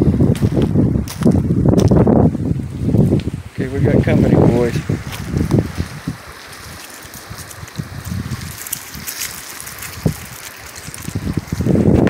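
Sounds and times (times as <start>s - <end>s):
wind buffeting microphone: 0.0s - 12.0s
cobbles crunching underfoot: 0.3s - 2.1s, 2.9s - 12.0s.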